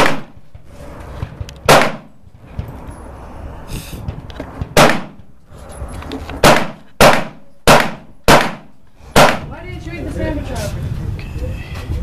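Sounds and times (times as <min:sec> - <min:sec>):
pistol shots with echo: 0:00.0 - 0:00.4, 0:01.6 - 0:02.1, 0:04.7 - 0:05.2, 0:06.4 - 0:09.5.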